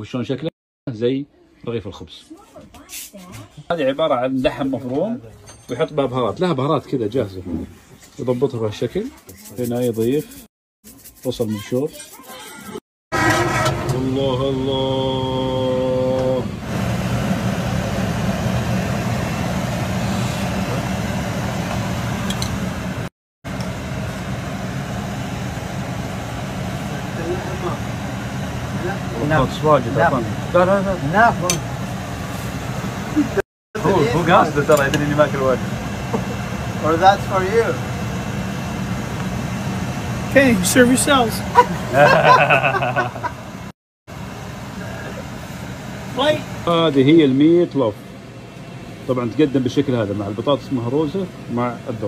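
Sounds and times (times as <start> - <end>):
low mechanical hum: 13.6 - 52.0.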